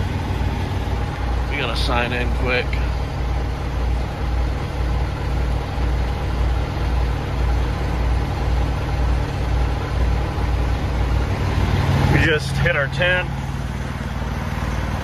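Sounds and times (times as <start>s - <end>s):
diesel engine idling: 0.0s - 15.0s.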